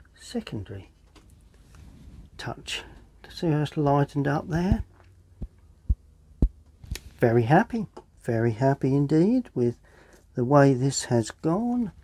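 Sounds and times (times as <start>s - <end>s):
faint steady low hum: 0.0s - 12.0s
soft low thumps: 4.5s - 7.0s.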